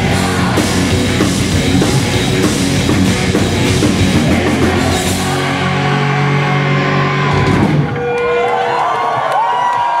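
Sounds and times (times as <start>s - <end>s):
crowd shouting: 0.0s - 2.4s, 3.2s - 10.0s
rock band final chord: 0.0s - 8.1s.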